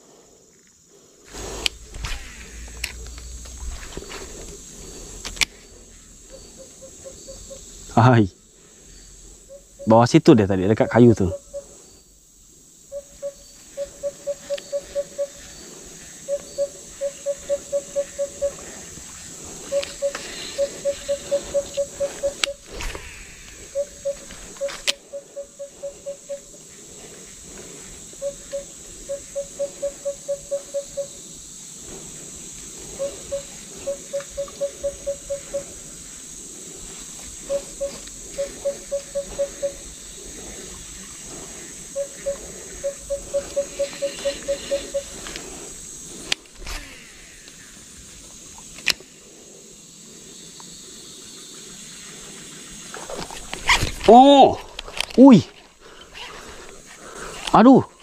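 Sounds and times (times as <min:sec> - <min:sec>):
high insect hum: 0:00.0 - 0:58.0
sharp clicks: 0:01.3 - 0:04.6
animal calling in pulsed notes: 0:01.3 - 0:08.0, 0:08.9 - 0:11.9, 0:12.9 - 0:18.8, 0:19.5 - 0:22.7, 0:23.3 - 0:26.6, 0:28.1 - 0:31.2, 0:32.9 - 0:36.0, 0:37.4 - 0:45.3.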